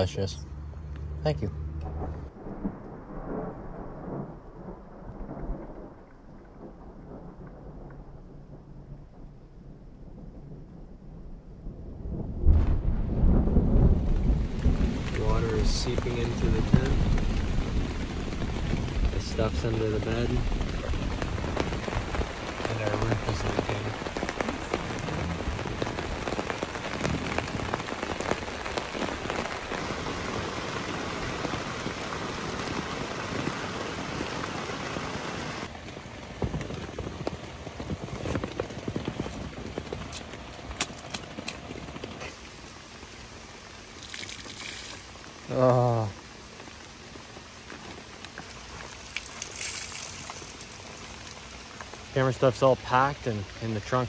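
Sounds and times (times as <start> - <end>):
rain falling on a tent: 2.3 - 9.6, 12.1 - 54.0.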